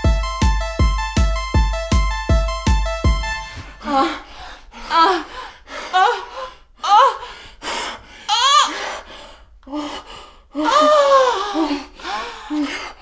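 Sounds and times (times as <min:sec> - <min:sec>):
breathy exhalations: 0:03.4 - 0:13.0
women moaning: 0:03.8 - 0:04.3, 0:04.9 - 0:07.2, 0:08.3 - 0:08.8, 0:10.6 - 0:12.7.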